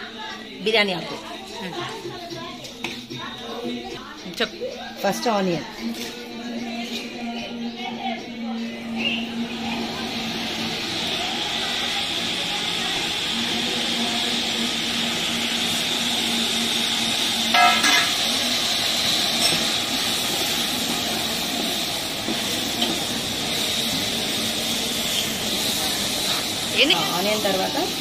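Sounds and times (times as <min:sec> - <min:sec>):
onions sizzling in oil: 0:08.9 - 0:28.0.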